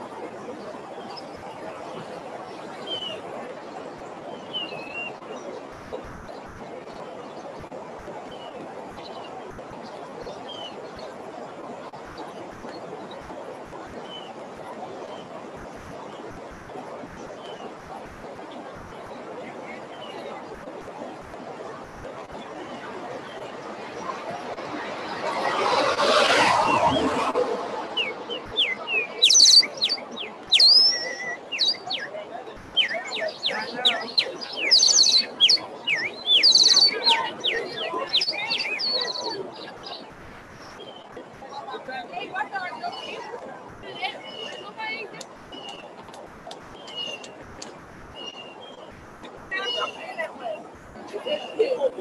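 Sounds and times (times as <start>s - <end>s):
background hiss and rumble: 0.0s - 52.0s
birds chirping: 0.0s - 52.0s
bird chirps: 2.8s - 3.2s, 4.3s - 5.2s, 28.0s - 41.1s, 44.0s - 44.8s, 45.5s - 46.0s, 46.7s - 47.4s, 48.2s - 48.9s.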